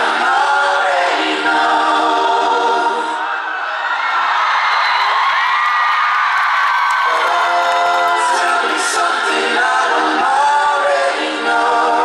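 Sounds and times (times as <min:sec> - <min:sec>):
crowd singing along: 0:00.0 - 0:03.9, 0:07.1 - 0:12.0
man singing: 0:07.1 - 0:09.2.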